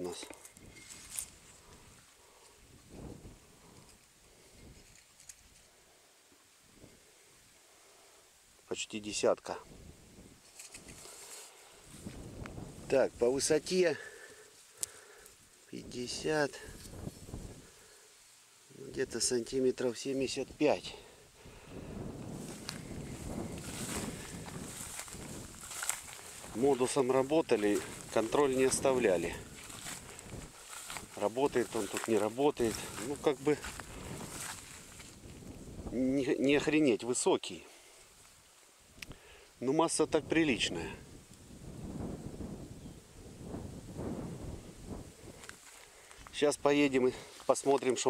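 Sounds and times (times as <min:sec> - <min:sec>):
wheat stalks rustling: 0:00.0 - 0:02.6, 0:10.4 - 0:18.4, 0:22.3 - 0:37.1, 0:45.2 - 0:48.0
footsteps: 0:00.1 - 0:02.6, 0:22.3 - 0:35.6, 0:45.4 - 0:46.4
wheat stalks swishing: 0:22.4 - 0:35.2.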